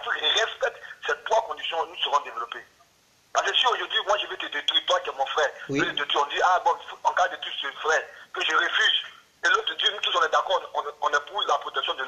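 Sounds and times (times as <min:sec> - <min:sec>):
man talking: 0:00.0 - 0:02.7, 0:03.4 - 0:12.0.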